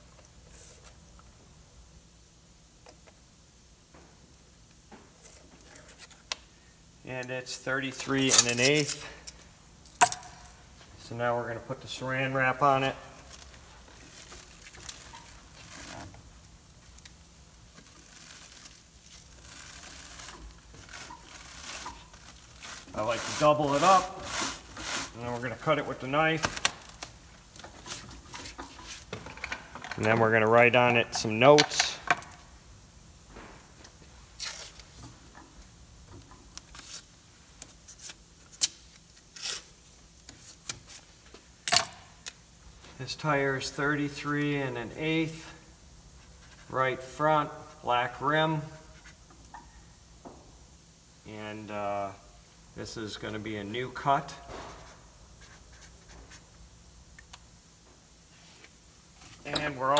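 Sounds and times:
cling wrap crinkling: 13.1s - 29.1s
masking tape ripping: 17.7s - 25.4s.

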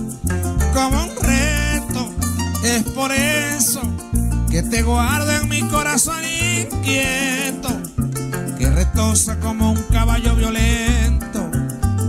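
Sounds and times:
deep bass notes: 0.0s - 12.0s
person singing: 0.6s - 11.8s.

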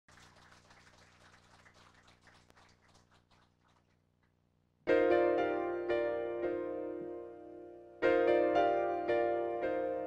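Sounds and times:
faint audience clapping: 0.0s - 4.6s.

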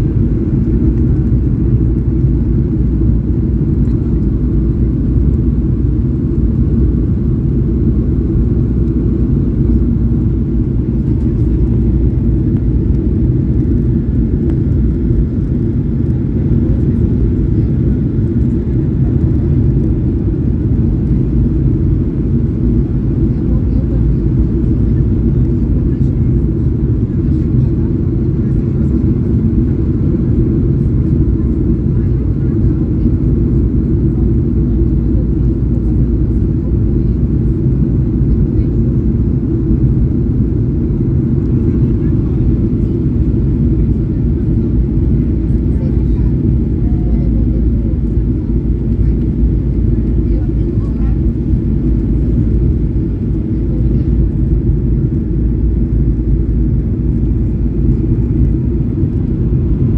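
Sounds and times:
airflow over fuselage: 0.0s - 59.9s
jet engine drone: 0.0s - 59.9s.

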